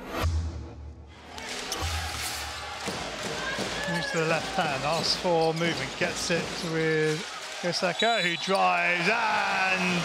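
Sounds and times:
arena noise: 1.2 - 10.0.

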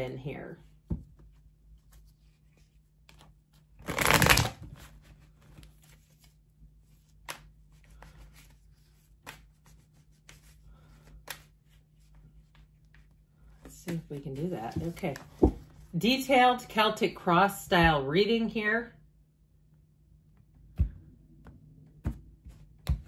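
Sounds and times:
cards riffle shuffled: 3.1 - 6.4.

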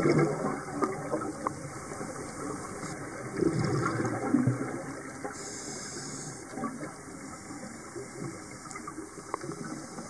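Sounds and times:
exhaled bubbles rushing: 0.0 - 5.3
steady underwater hiss: 0.0 - 10.0.

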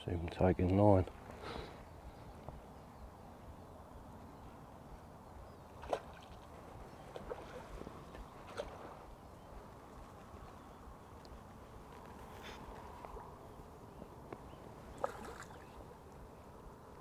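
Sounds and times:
river water hiss: 1.1 - 2.4, 4.2 - 17.0
fish splashing at water surface: 14.9 - 15.7.

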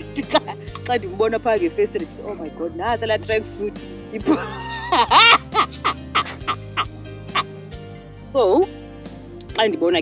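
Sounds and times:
woman laughing: 0.0 - 0.7, 4.2 - 7.5
background music: 0.0 - 10.0.

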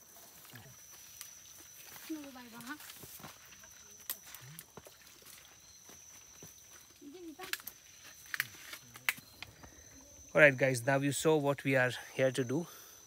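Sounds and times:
footsteps through vegetation: 0.0 - 9.3
high-pitched insect tone: 0.0 - 13.0.

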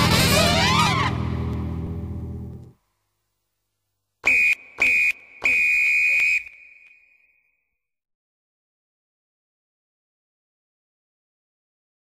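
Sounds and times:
whistle blasts: 4.2 - 7.7.

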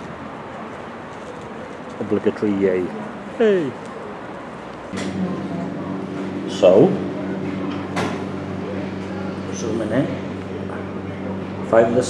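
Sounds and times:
steady low hum: 4.9 - 12.0.

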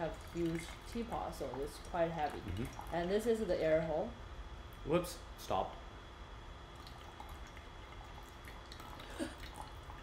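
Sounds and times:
tea dripping into glass pitcher: 0.0 - 3.3, 6.7 - 10.0
quiet room hum: 0.0 - 10.0.

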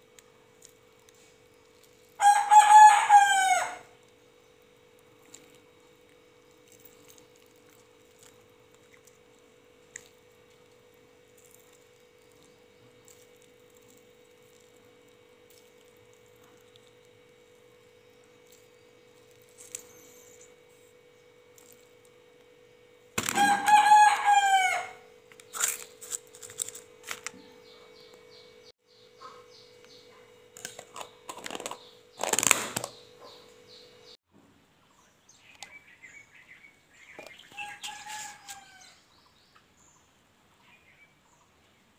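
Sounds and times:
faint steady hum: 0.0 - 41.9
rooster crowing: 2.2 - 4.0, 23.2 - 25.1, 37.5 - 39.0.

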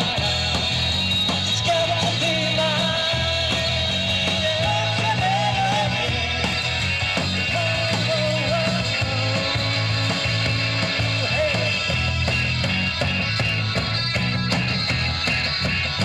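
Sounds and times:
rock band playing: 0.0 - 16.0.

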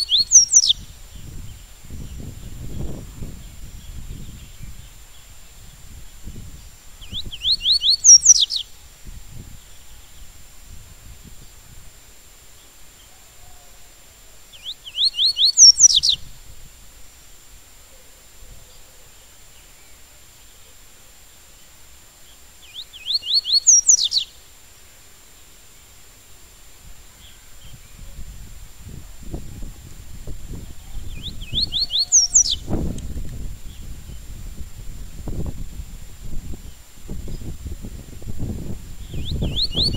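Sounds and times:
bird singing whistled notes: 0.0 - 10.4, 14.5 - 16.4, 22.6 - 24.4, 27.1 - 34.4, 38.4 - 39.9.

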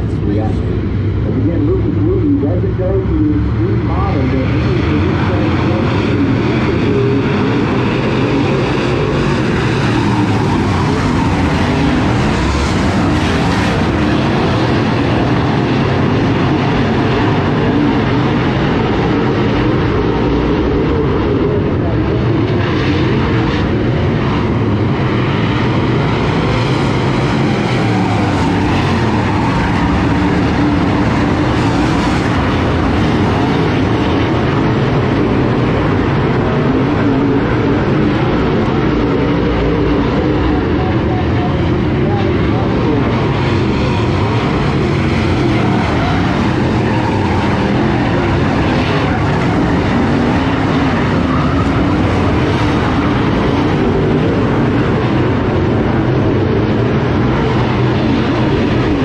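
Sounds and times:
race car engines roaring: 0.0 - 59.0.

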